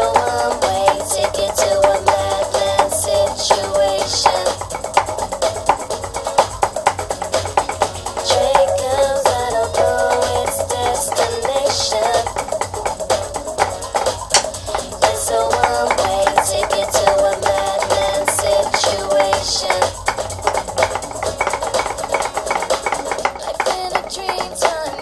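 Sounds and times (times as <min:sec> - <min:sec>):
rapid drumstick strokes: 0:00.0 - 0:25.0
recorded music with sustained melody: 0:00.0 - 0:25.0.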